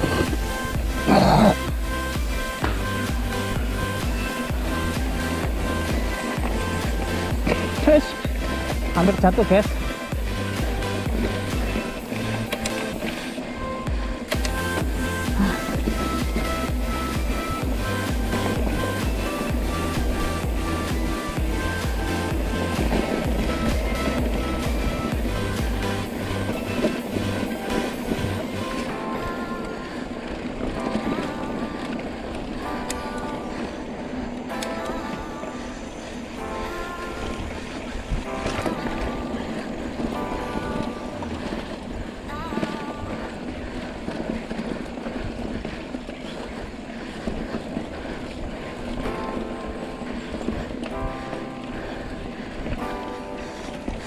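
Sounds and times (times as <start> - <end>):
deep bass notes: 0.0 - 12.5, 14.4 - 27.5
background music: 0.0 - 54.0.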